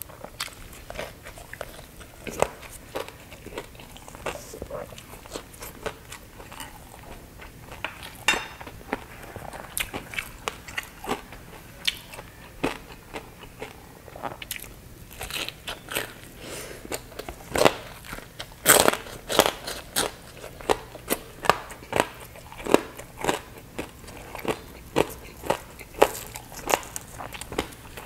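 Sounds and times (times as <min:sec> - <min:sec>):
crunchy chewing: 0:00.0 - 0:28.0.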